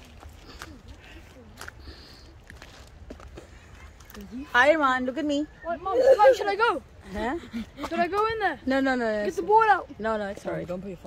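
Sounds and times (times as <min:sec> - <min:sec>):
footsteps in undergrowth: 0:00.0 - 0:04.8
faint voices: 0:00.0 - 0:11.0.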